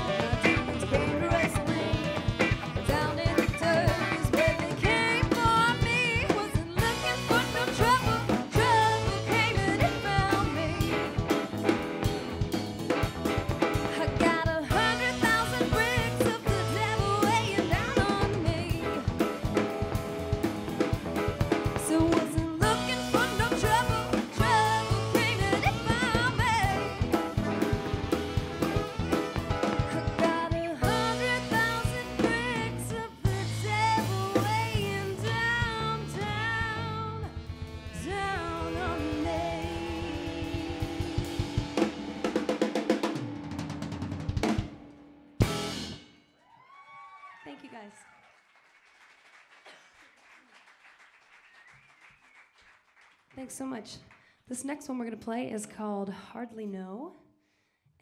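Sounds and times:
saxophone: 0:00.0 - 0:42.7
electric guitar: 0:00.0 - 0:46.0
bass guitar: 0:00.0 - 0:46.2
drum kit: 0:00.0 - 0:46.2.

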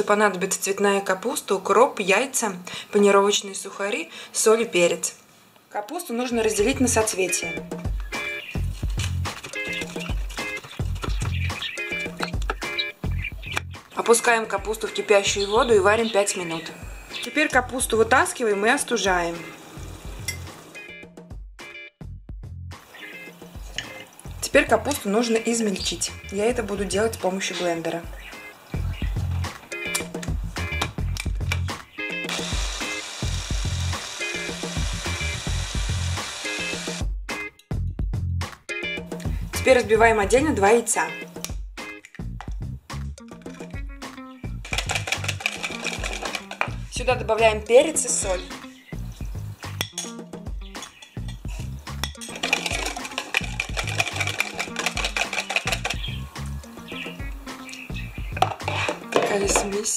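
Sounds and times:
background music with steady beat: 0:06.4 - 0:59.9
electric chopper running: 0:32.3 - 0:37.0
whisk beating eggs in plastic bowl: 0:44.7 - 0:46.8, 0:52.4 - 0:56.0
spoon clinks: 0:49.8 - 0:50.2.

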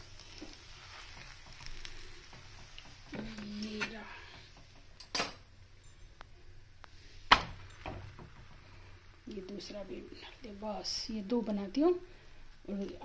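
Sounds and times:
metal spatula scraping griddle: 0:00.0 - 0:04.6
spatula clattering: 0:00.1 - 0:05.1.

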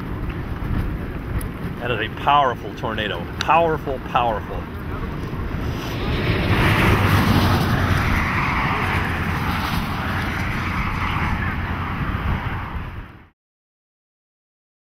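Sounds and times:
wind buffeting microphone: 0:00.0 - 0:13.3.

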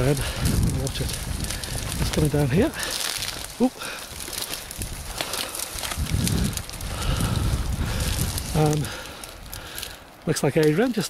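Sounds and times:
footsteps through dry bracken: 0:00.0 - 0:11.0.

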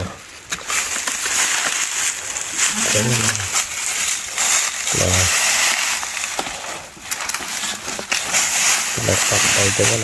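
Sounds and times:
hand tool digging dry soil: 0:00.0 - 0:10.0.

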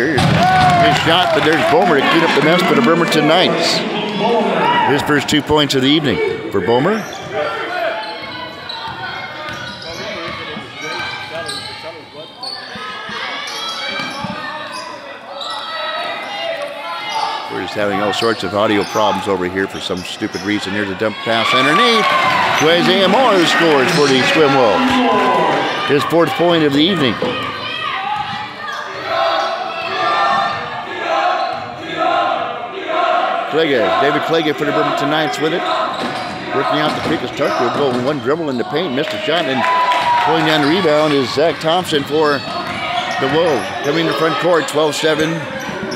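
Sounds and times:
players and crowd shouting: 0:00.0 - 0:45.9
spectators chattering: 0:00.0 - 0:45.9.

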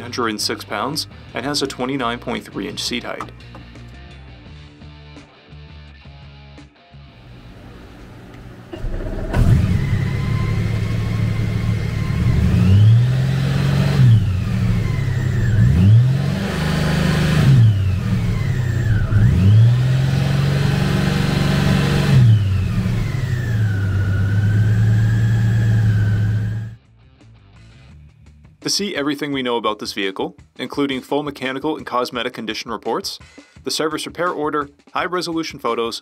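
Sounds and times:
motorcycle engine starting: 0:07.2 - 0:26.8
motorcycle engine revving: 0:08.8 - 0:26.8.

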